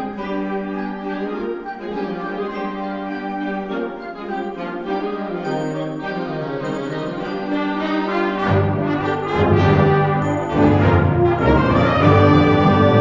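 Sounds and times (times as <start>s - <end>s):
concert band playing a march: 0.0s - 13.0s
low brass: 5.0s - 13.0s.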